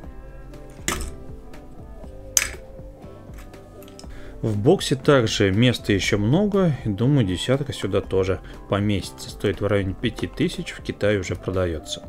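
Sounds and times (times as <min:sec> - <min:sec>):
background music: 0:00.0 - 0:12.0
hard plastic clink: 0:00.7 - 0:01.2, 0:02.4 - 0:02.7, 0:03.4 - 0:04.1.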